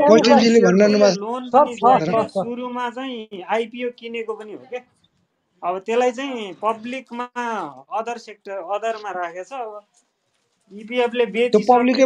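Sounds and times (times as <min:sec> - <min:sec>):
person talking over online chat: 0:00.0 - 0:04.8, 0:05.6 - 0:09.8.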